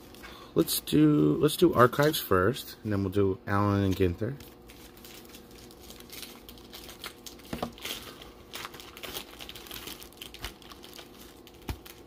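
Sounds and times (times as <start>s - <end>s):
foil packs crinkling: 3.7s - 12.0s.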